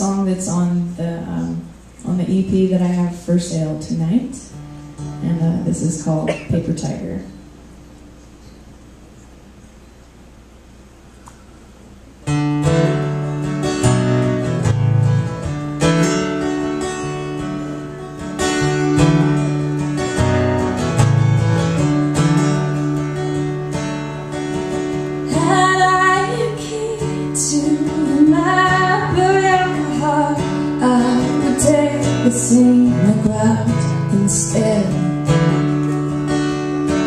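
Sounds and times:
acoustic guitar strumming: 2.7 - 7.7, 12.2 - 37.0
woman singing: 25.3 - 35.4.

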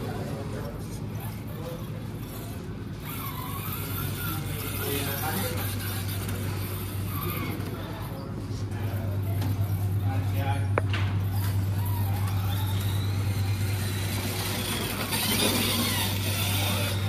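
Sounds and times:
steady low hum: 0.0 - 17.0
electric motor whining: 0.6 - 8.1, 11.2 - 17.0.

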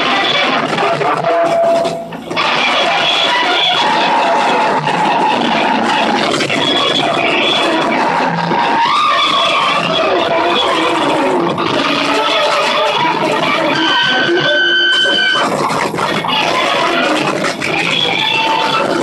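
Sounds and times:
wall of distorted noise: 0.0 - 19.0.

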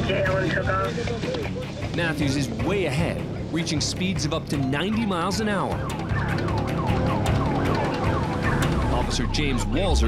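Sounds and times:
engine and road rumble: 0.0 - 10.0
police car siren yelping: 5.1 - 10.0.

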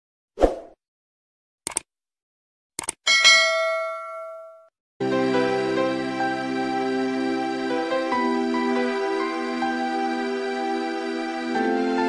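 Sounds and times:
bright bell ding: 3.1 - 4.7.

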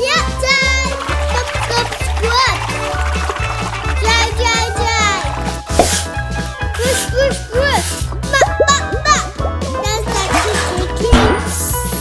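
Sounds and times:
upbeat music with bass beat: 8.2 - 9.3.

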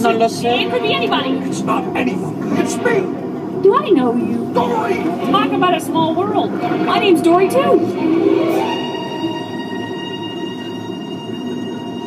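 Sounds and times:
steady cabin rumble: 0.0 - 12.0.

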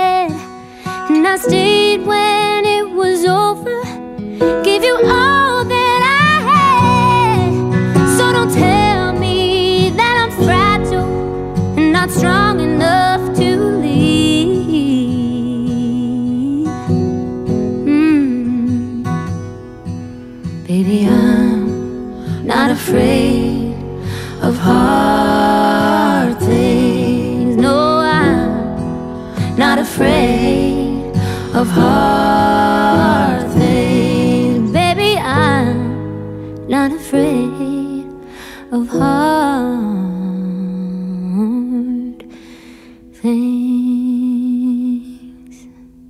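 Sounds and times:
woman singing with vibrato: 0.0 - 11.2, 11.8 - 16.8, 17.8 - 19.3, 20.7 - 28.7, 29.3 - 36.0, 38.7 - 42.2
guitar backing: 0.0 - 38.4
soft sustained accompaniment: 4.4 - 40.6
woman humming held notes: 17.8 - 19.1.

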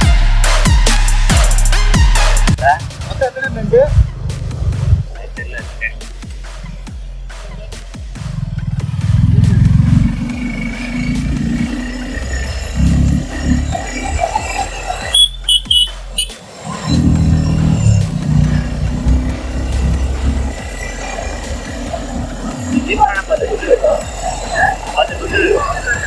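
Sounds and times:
motorcycle engine: 3.6 - 5.2, 6.2 - 23.1.

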